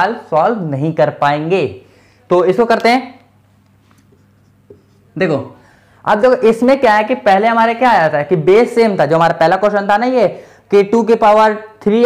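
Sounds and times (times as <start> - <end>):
marker pen writing on whiteboard: 3.9 - 5.2.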